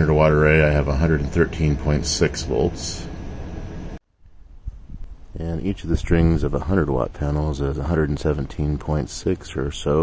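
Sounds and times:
low wind rumble on microphone: 0:04.2 - 0:07.1.

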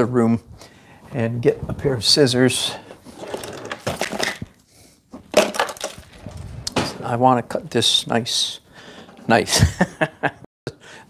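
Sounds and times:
rustling of objects handled: 0:02.6 - 0:07.2
objects clattering: 0:02.8 - 0:07.1.

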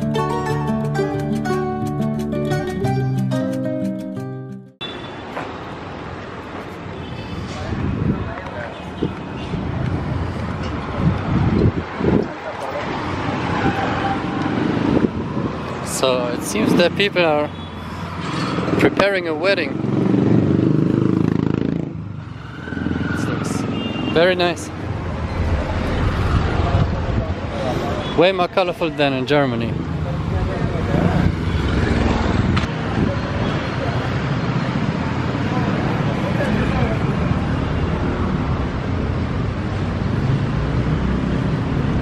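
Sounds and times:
road noise: 0:00.0 - 0:42.0
vehicle engines: 0:04.8 - 0:42.0.

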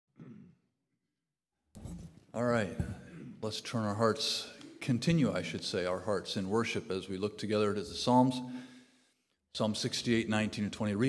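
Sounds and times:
man speaking: 0:02.3 - 0:08.6, 0:09.6 - 0:11.0.

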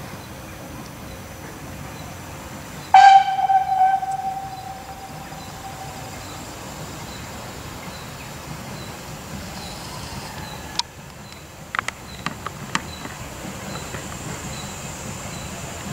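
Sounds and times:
steam locomotive whistle blast: 0:03.0 - 0:06.6.

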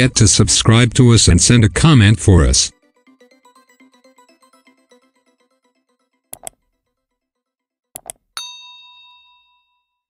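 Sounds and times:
quick clicks: 0:06.4 - 0:06.6, 0:08.0 - 0:08.2
bright bell ding: 0:08.4 - 0:10.0.

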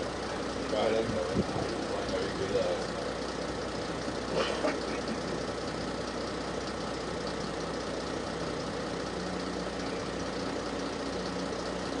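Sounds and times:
outboard motor running: 0:00.0 - 0:12.0.

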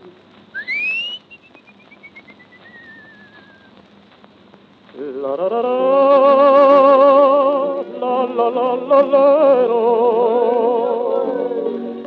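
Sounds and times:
record surface hiss and clicks: 0:00.0 - 0:12.0
whistling melody: 0:00.6 - 0:03.7.

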